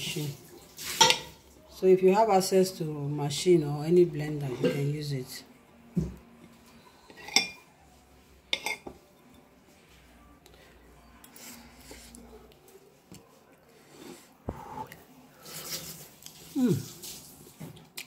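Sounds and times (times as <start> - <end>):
cutlery clinking on a plate: 1.0 - 1.4, 7.1 - 7.7, 8.5 - 9.5.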